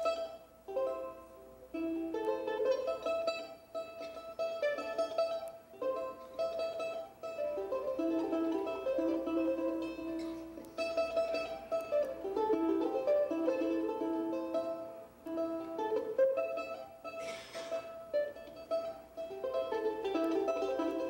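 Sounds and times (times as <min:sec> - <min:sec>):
charango melody: 0:00.0 - 0:21.0.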